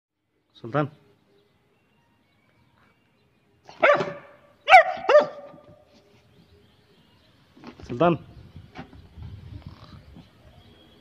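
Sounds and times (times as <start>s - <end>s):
puppy barking: 3.7s - 5.7s.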